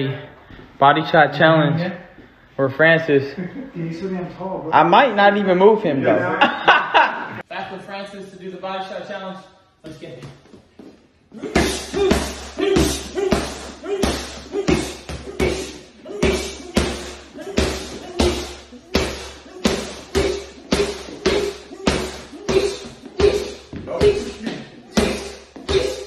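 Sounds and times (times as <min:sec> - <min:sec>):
punches on padded body protector: 0:11.4 - 0:26.0.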